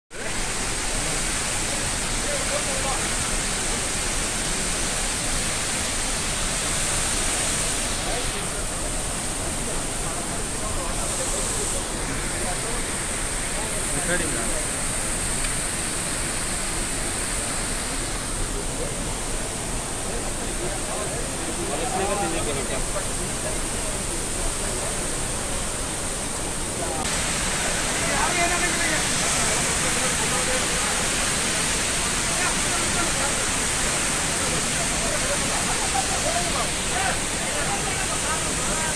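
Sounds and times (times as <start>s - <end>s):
waterfall rushing: 0.1s - 38.9s.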